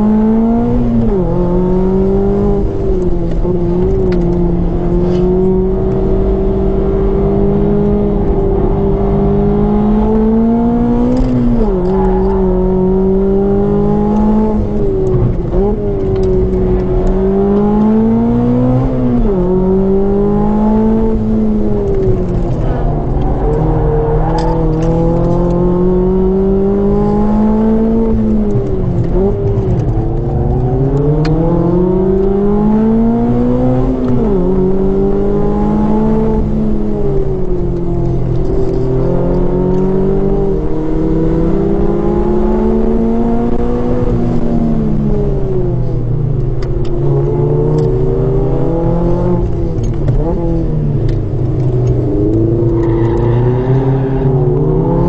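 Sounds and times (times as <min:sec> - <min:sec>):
car engine revving on track: 0:00.0 - 0:55.0.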